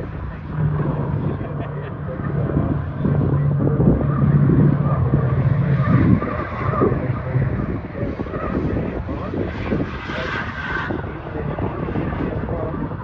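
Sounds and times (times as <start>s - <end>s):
racing car engines droning: 0.0s - 13.0s.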